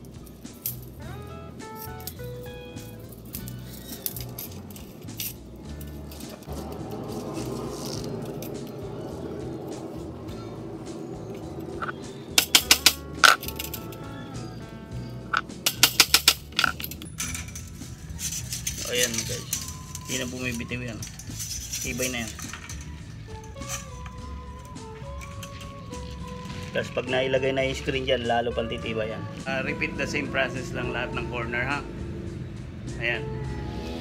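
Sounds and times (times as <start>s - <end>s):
metal frames clinking together: 0.0s - 9.2s, 11.2s - 28.2s
background music: 0.0s - 34.0s.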